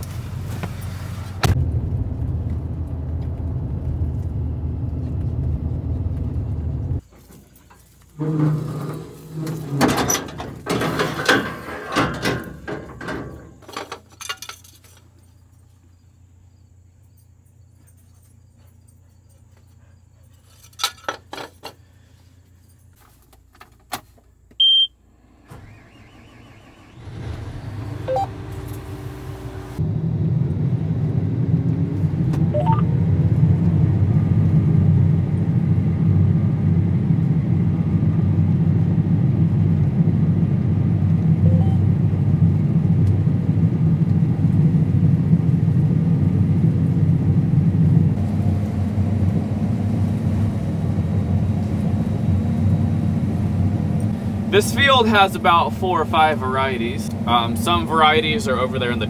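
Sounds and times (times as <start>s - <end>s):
combine engine and threshing drone: 1.4s - 7.0s, 25.1s - 59.0s
short beep: 24.6s - 25.0s, 32.6s - 32.8s, 41.4s - 41.9s.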